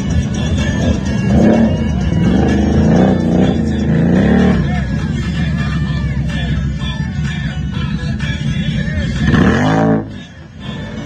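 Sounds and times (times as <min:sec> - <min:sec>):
music: 0:00.0 - 0:11.0
quad bike engine revving: 0:00.5 - 0:05.7, 0:09.1 - 0:11.0.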